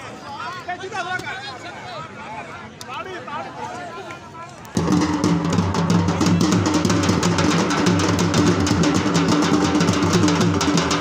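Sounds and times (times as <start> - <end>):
fast dhol drumming: 4.8 - 11.0.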